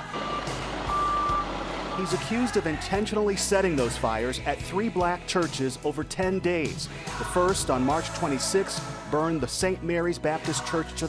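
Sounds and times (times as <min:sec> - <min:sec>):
vehicle reversing alarm beeping: 0:00.0 - 0:03.3
trucks running: 0:00.0 - 0:09.4.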